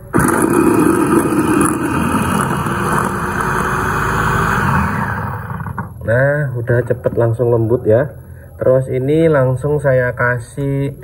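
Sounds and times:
electric food chopper running: 0.0 - 6.0.

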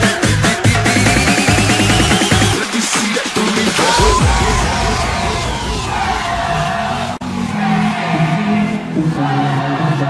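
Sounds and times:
heavy bass: 0.0 - 9.9
siren-like synth effects: 3.8 - 7.3
low synth chords: 4.0 - 9.3.

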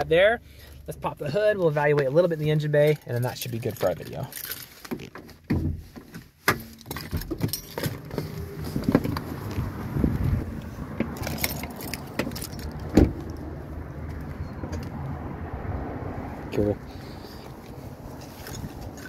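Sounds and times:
clicks and knocks inside vehicle: 2.8 - 13.5
keys jangling: 6.9 - 8.1, 11.2 - 12.9.

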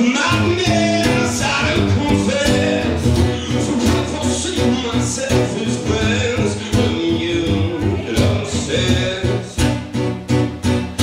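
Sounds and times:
person singing: 0.0 - 9.8
strummed guitar: 0.0 - 11.0
steady drum beat: 0.3 - 9.7.

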